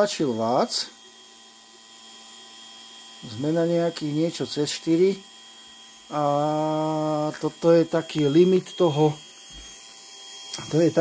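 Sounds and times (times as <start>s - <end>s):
electric fuel pump humming: 0.0s - 11.0s.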